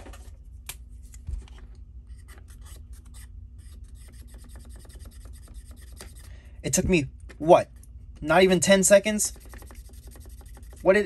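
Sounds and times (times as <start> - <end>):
marker pen rubbing on plastic: 2.1 - 6.3, 8.4 - 11.0.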